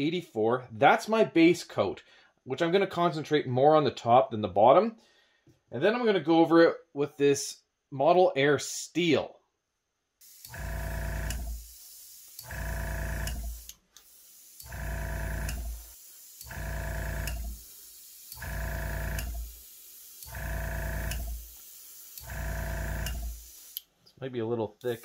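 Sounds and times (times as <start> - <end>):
air hiss: 10.2 - 12.6, 13.2 - 23.9, 24.8 - 25.0
airbrush compressor motor: 10.2 - 23.8.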